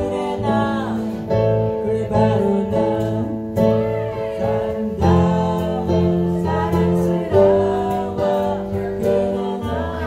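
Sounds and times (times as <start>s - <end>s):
electric bass guitar: 0.0s - 10.0s
woman singing: 0.0s - 10.0s.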